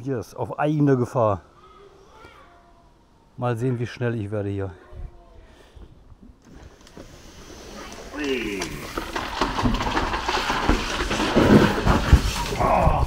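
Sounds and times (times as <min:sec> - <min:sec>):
scraping and knocking on plastic: 0:08.6 - 0:13.0.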